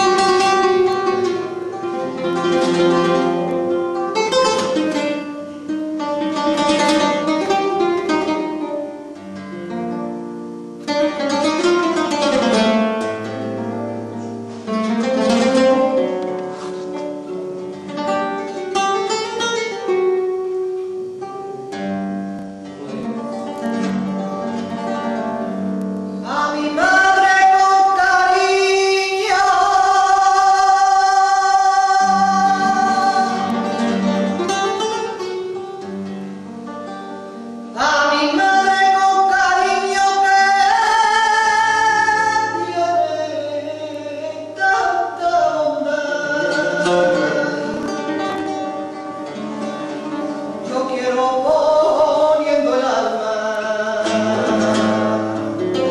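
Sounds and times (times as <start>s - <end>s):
flamenco guitar playing: 0.0s - 55.9s
woman singing wordless melismas: 26.2s - 35.2s, 37.7s - 49.8s, 50.5s - 55.9s.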